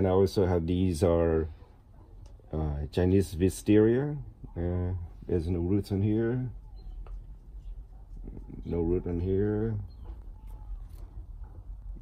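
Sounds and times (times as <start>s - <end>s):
low steady background hum: 0.0s - 12.0s.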